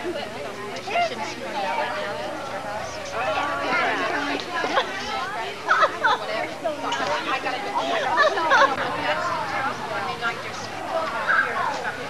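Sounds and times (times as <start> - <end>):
overlapping voices chattering: 0.0 - 12.0.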